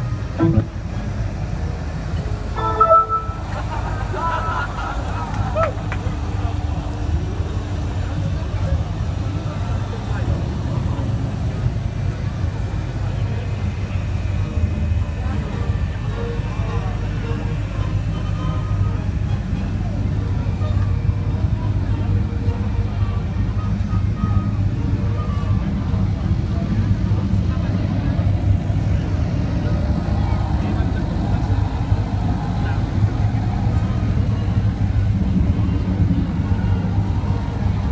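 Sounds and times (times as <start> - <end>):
low engine hum: 0.0 - 37.9
voices: 2.1 - 37.9.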